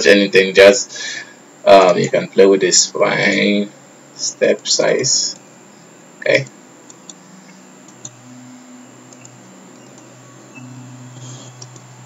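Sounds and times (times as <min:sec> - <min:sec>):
low steady hum: 0:00.0 - 0:12.0
computer mouse clicks: 0:09.1 - 0:10.1, 0:11.2 - 0:11.9.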